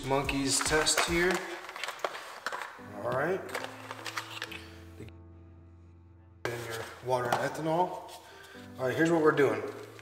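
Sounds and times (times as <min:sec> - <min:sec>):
cardboard and plastic parts clicking: 0:00.6 - 0:02.8.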